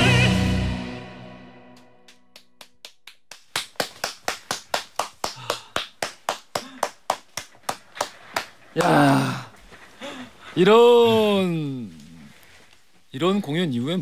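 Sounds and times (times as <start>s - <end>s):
hand clapping: 1.7s - 9.2s.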